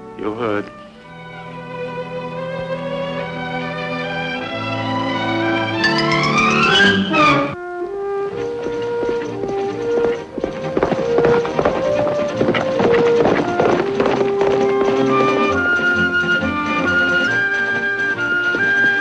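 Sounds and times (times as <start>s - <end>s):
orchestral western score: 0.0s - 19.0s
horse galloping hoofbeats: 1.2s - 19.0s.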